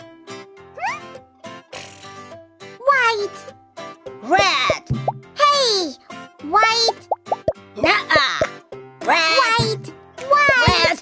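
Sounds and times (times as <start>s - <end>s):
cheerful children's music: 0.0s - 11.0s
plop sound effects: 7.1s - 7.6s, 10.4s - 11.0s
cartoon character voices exclaiming: 7.8s - 11.0s.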